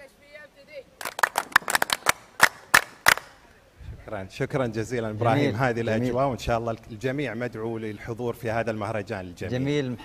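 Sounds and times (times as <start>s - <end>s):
people clapping hands: 1.0s - 3.4s.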